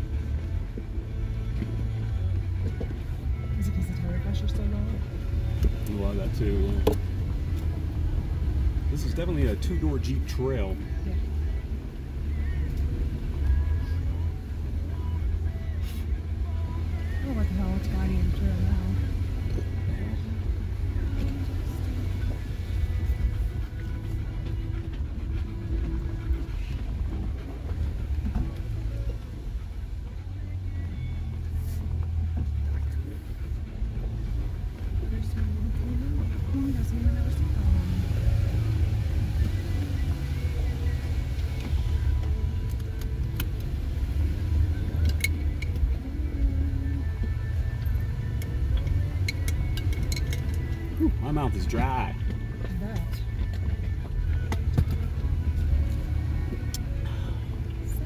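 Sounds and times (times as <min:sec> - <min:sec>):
vehicle engine rumble: 0:00.0 - 0:58.0.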